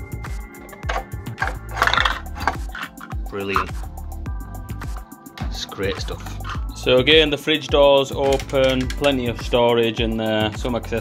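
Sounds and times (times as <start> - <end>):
background music with beat: 0.0 - 11.0
toy ice dispenser sound effect: 0.9 - 3.1.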